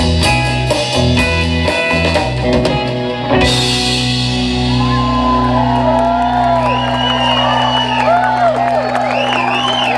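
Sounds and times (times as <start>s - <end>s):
electric guitar and bass chord: 0.0s - 8.0s
audience whooping and cheering: 4.6s - 9.9s.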